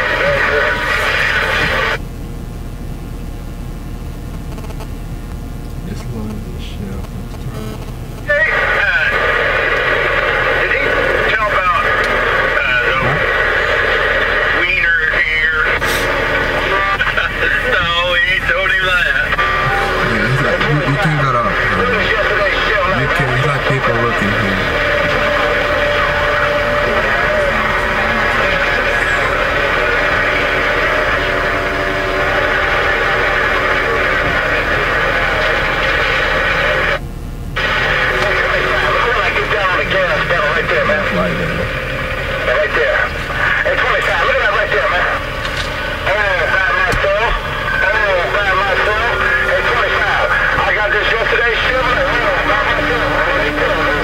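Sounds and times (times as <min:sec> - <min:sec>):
indistinct voices: 0:00.0 - 0:02.6, 0:05.5 - 0:37.0, 0:37.6 - 0:54.0
steady hum: 0:00.0 - 0:54.0.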